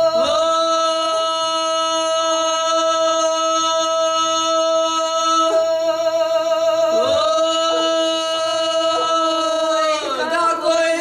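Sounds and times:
women singing long-held notes: 0.0s - 11.0s.

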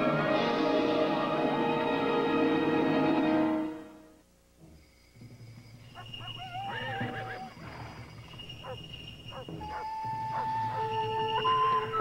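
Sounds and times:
wild animal howl-like cry: 6.4s - 7.5s, 9.4s - 12.0s.

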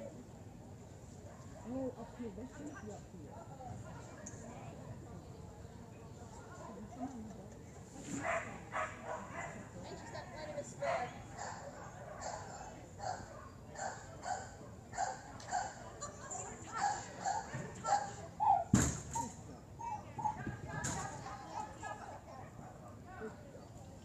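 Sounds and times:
dog barking: 8.2s - 9.6s, 10.9s - 15.8s
loud thud of obstacle: 18.7s - 19.2s.

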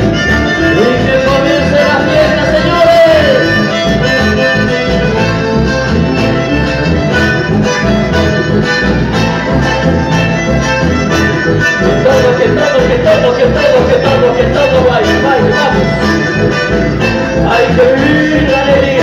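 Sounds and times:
live band with accordion: 0.0s - 19.0s
person singing: 0.3s - 3.6s, 11.8s - 19.0s.

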